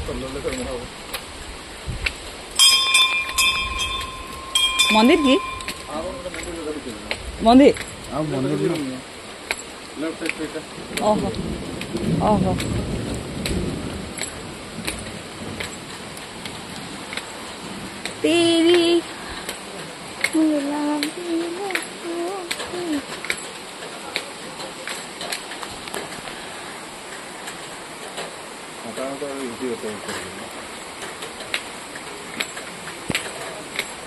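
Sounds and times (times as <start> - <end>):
falling water rushing: 0.0 - 34.0
metal temple bell ringing: 2.6 - 6.6.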